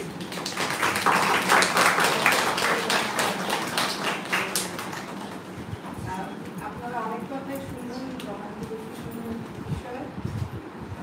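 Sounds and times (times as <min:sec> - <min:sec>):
audience applause: 0:00.0 - 0:05.5
murmur of voices: 0:00.0 - 0:10.2.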